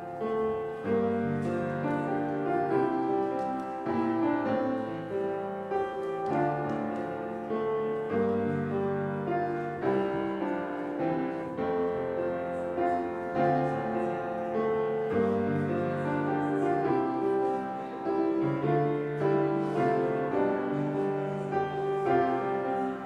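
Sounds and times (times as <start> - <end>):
slow keyboard chords: 0.0 - 23.0.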